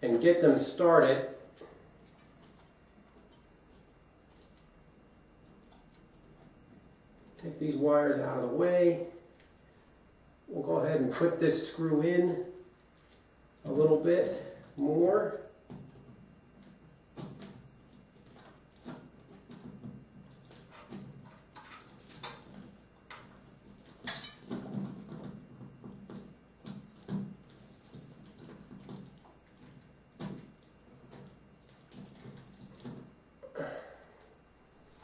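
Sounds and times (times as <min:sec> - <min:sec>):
chandelier metal clicks and rattles: 0:01.5 - 0:04.7, 0:18.2 - 0:33.1.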